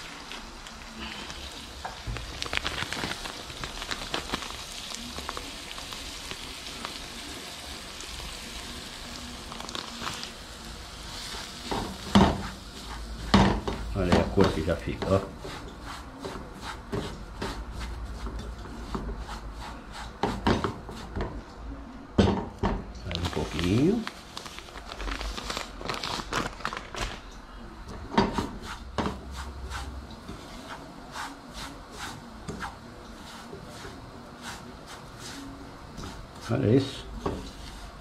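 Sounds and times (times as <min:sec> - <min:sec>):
plastic bag rustling: 0:00.0 - 0:07.1, 0:09.2 - 0:13.2, 0:23.0 - 0:27.3
spatula scraping flour in a pan: 0:10.9 - 0:21.4, 0:28.2 - 0:38.0
spatula tapping a pan: 0:11.7 - 0:12.5, 0:20.2 - 0:21.4.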